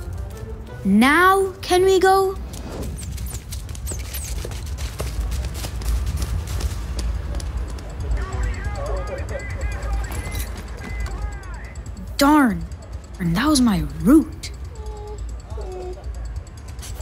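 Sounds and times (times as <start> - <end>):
cartoon running footsteps: 0.0 - 14.7
short high squeaks: 2.8 - 4.7.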